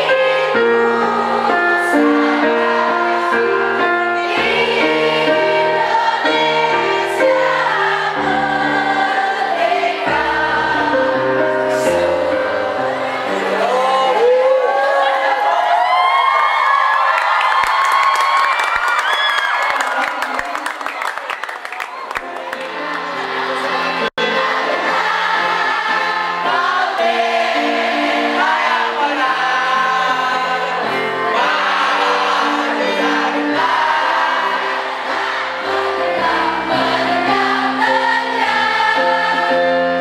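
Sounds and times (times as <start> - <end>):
group singing: 0.0 - 15.4, 22.6 - 40.0
crowd cheering: 13.3 - 26.7, 30.1 - 39.5.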